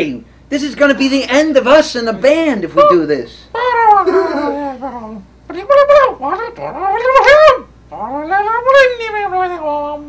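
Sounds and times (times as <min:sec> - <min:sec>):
high wordless whining wails: 0:03.5 - 0:10.0.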